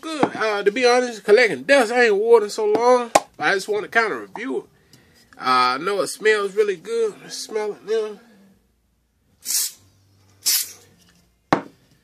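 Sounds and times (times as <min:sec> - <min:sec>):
aerosol spray can hissing: 0:09.4 - 0:09.8, 0:10.4 - 0:10.8.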